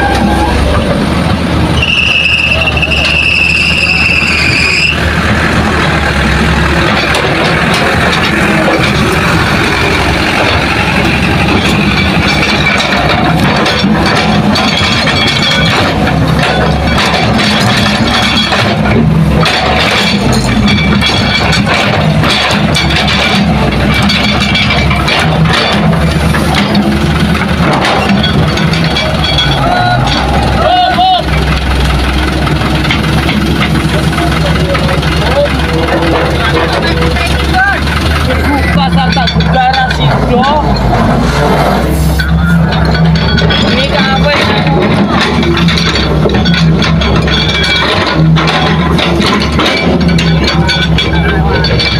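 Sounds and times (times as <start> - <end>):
diesel engines running: 0.0 - 51.9
voices: 0.0 - 51.9.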